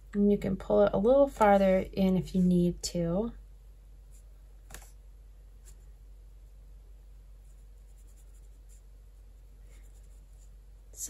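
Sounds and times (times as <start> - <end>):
electric fan hum: 0.0 - 11.0
paintbrush dabbing on paper: 7.3 - 10.6.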